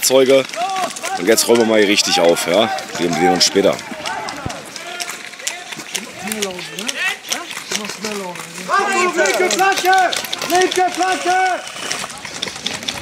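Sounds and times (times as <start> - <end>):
players shouting: 0.0 - 12.4
airsoft guns firing: 0.4 - 13.0.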